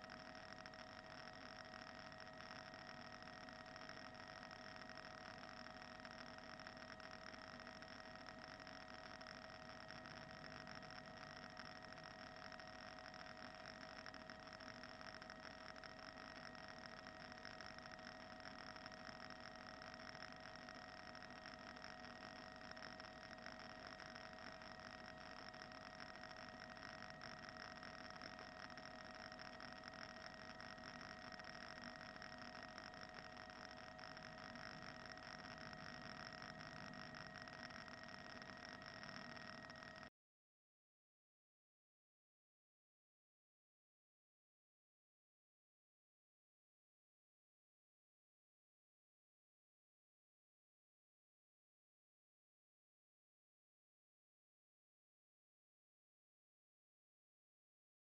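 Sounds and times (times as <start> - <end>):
faint electronic hum and hiss: 0.0 - 40.1.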